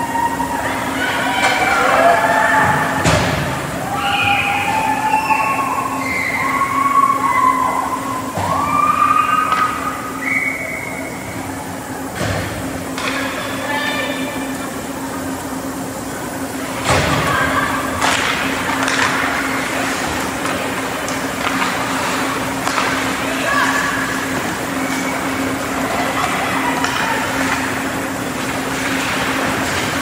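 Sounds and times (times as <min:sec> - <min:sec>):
steady low hum: 0:00.0 - 0:30.0
shouted calls: 0:03.8 - 0:11.2.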